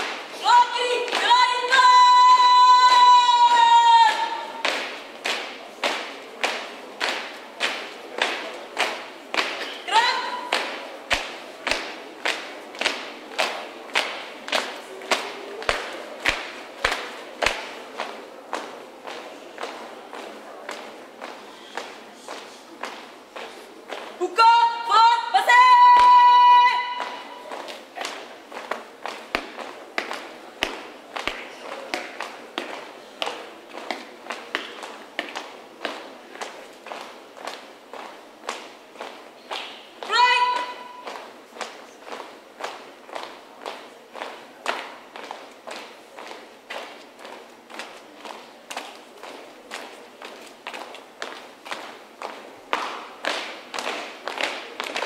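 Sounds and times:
shouted marching command: 0.3 - 6.0, 9.7 - 10.8, 24.2 - 27.7, 40.0 - 41.3
marching footsteps on pavement: 25.8 - 55.0.

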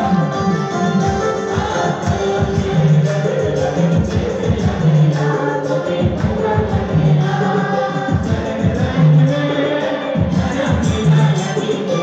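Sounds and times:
drums beaten with sticks: 0.0 - 12.0
group singing: 0.0 - 12.0
keyboard: 0.0 - 12.0.

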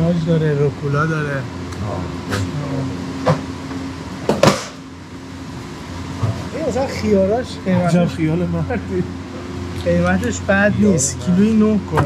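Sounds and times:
refrigeration fans humming: 0.0 - 12.0
knocks from shopping trolley: 4.3 - 4.8.

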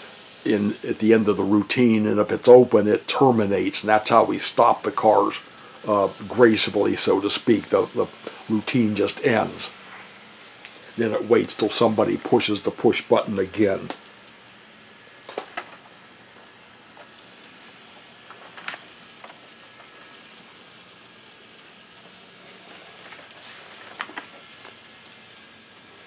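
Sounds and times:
model train motors hissing: 0.0 - 26.0.

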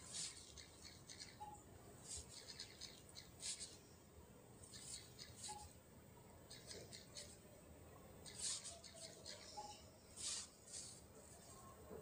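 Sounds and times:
fingertip swishing on touchscreen: 0.0 - 3.8, 8.2 - 11.5.

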